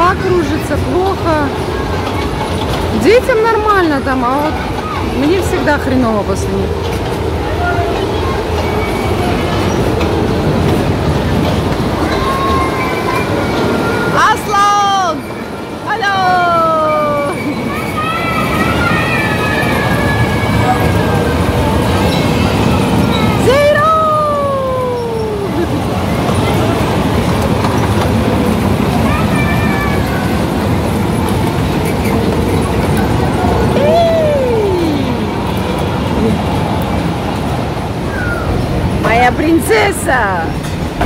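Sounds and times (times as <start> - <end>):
children's car ride rolling rumble: 0.0 - 41.0
voices calling out: 0.0 - 41.0.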